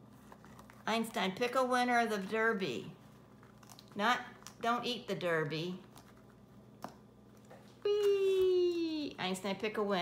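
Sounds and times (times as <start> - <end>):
faint paper rustling: 0.0 - 1.1, 5.7 - 8.9.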